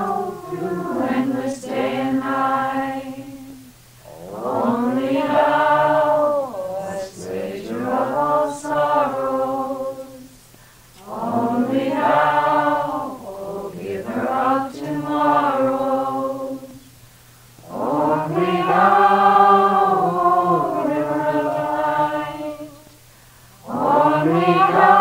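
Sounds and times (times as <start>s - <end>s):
devotional chant: 0.0s - 25.0s.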